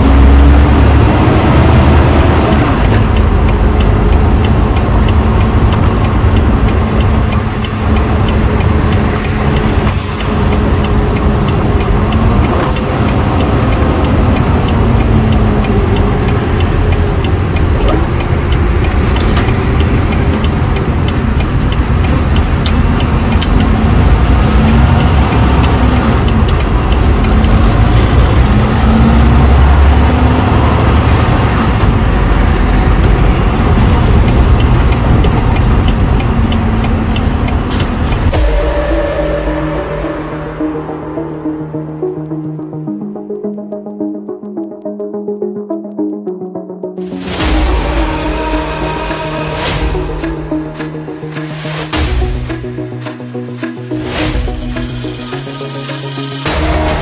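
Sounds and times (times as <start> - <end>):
road rumble: 0.0 - 44.8, 47.0 - 57.0
diesel engine drone: 0.0 - 57.0.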